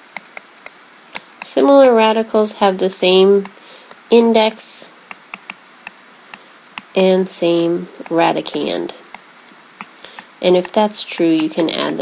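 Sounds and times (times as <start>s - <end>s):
faint steady hiss: 0.0s - 12.0s
stylus tapping on tablet screen: 5.1s - 6.9s.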